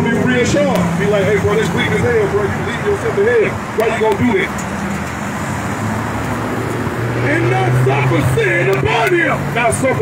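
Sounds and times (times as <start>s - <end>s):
passing vehicles rushing: 0.0s - 10.0s.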